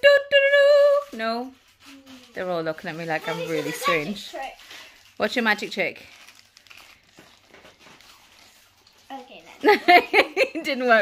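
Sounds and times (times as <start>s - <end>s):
crisp packet crinkling: 0.8s - 9.8s.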